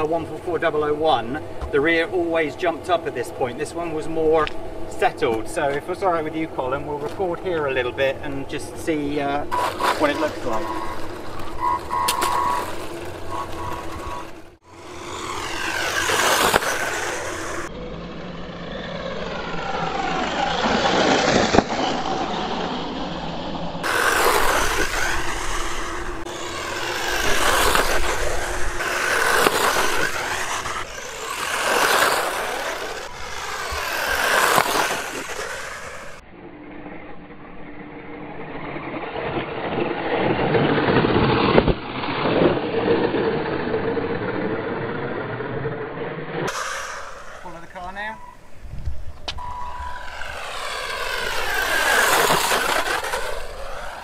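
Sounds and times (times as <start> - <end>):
toy car electric motor whining: 9.5 - 17.7, 18.6 - 23.0, 23.8 - 36.2, 49.4 - 54.0.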